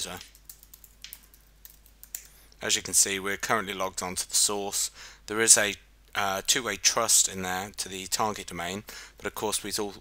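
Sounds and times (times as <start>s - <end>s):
computer keyboard typing: 0.0s - 2.3s.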